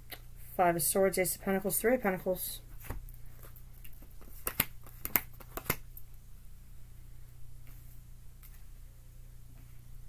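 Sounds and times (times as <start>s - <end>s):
cards snapping and tapping: 3.8s - 5.8s.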